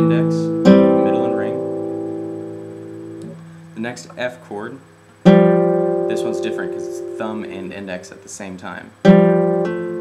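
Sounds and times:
fingerpicked classical guitar chord: 0.0s - 4.5s, 5.2s - 8.2s, 9.0s - 10.0s.

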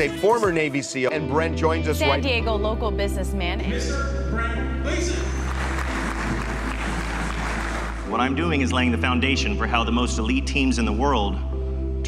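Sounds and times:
low background music: 0.0s - 12.0s
audience applauding: 5.0s - 8.3s.

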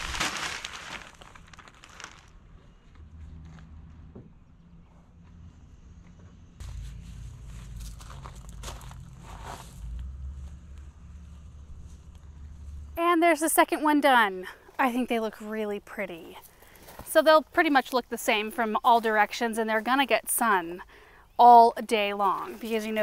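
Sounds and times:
plastic bag crinkling: 0.0s - 2.4s
soil pouring from bag: 0.0s - 2.4s
low rumble: 4.5s - 13.0s.

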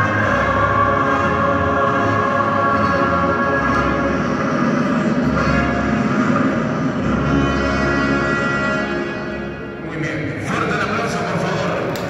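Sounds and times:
orchestral music over loudspeakers: 0.0s - 12.0s.

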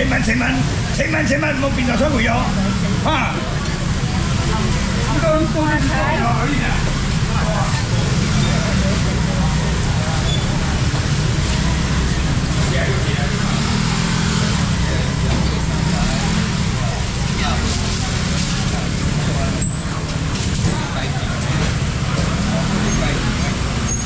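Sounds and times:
indistinct voices: 0.0s - 24.0s.

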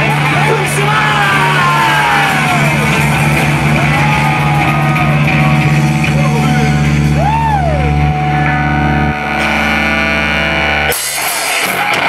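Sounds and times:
bass guitar sustained chord: 0.0s - 11.2s
distorted electric guitars: 0.0s - 12.0s.

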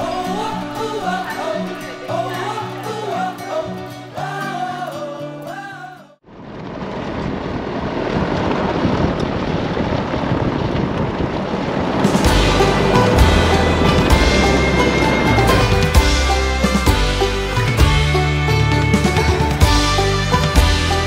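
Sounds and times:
background music with melody: 0.0s - 5.8s, 12.2s - 21.0s
vehicle road and wind noise: 6.3s - 17.8s.

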